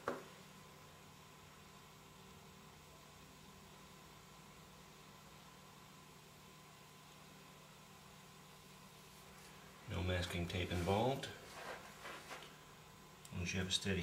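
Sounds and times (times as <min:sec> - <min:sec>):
faint hiss: 0:00.0 - 0:14.0.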